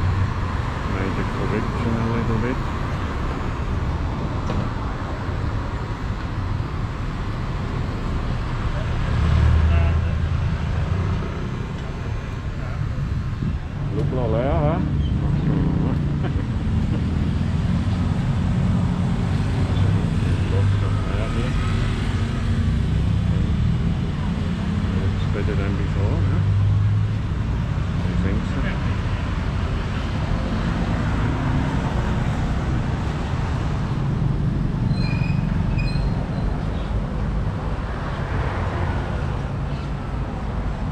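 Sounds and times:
road traffic rumble: 0:00.0 - 0:40.9
people talking: 0:00.9 - 0:02.6, 0:13.9 - 0:16.5, 0:19.8 - 0:21.6, 0:24.9 - 0:26.4, 0:28.0 - 0:28.9
vehicle passing or revving: 0:08.8 - 0:11.8, 0:13.5 - 0:35.8.

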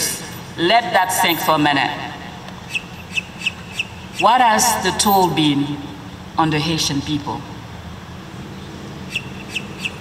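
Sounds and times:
bird chirping: 0:02.6 - 0:04.3, 0:08.4 - 0:10.0.

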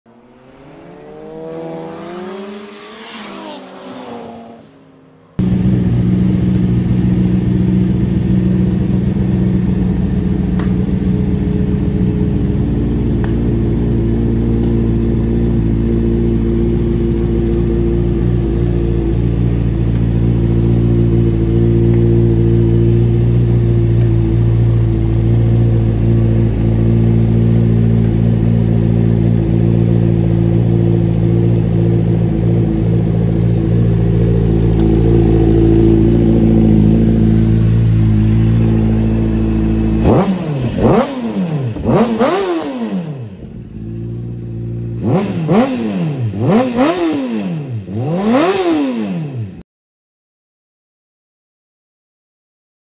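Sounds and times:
engine revving: 0:00.0 - 0:49.6
motorcycle engine idling: 0:05.1 - 0:46.9.

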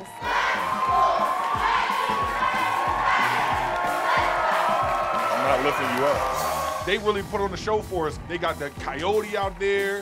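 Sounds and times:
crowd shouting and cheering: 0:00.0 - 0:10.0
pep band playing: 0:00.0 - 0:10.0
steady drum beat: 0:00.0 - 0:10.0.

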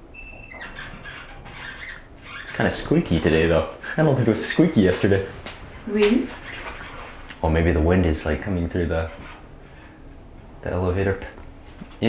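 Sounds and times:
elevator squeaking: 0:00.0 - 0:03.8.

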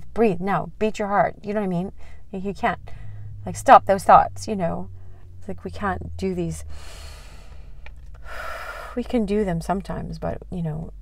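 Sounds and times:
woman speaking: 0:00.0 - 0:06.7, 0:08.9 - 0:11.0
low steady hum: 0:00.0 - 0:11.0
woman breathing: 0:01.9 - 0:03.4, 0:04.9 - 0:05.4, 0:06.6 - 0:09.0.

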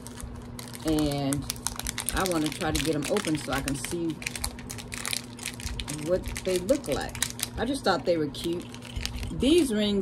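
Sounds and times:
packaging crinkling and rustling: 0:00.0 - 0:07.6, 0:08.4 - 0:09.4.

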